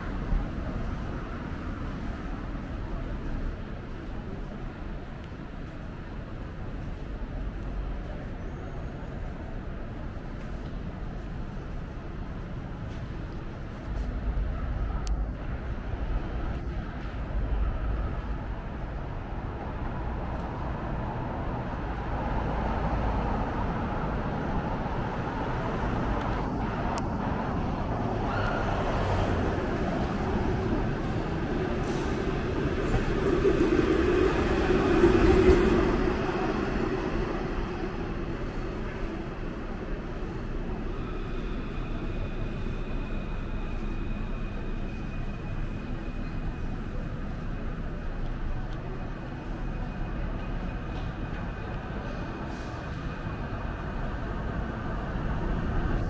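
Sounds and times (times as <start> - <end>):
electric tram passing: 0.0 - 56.0
street traffic: 0.0 - 56.0.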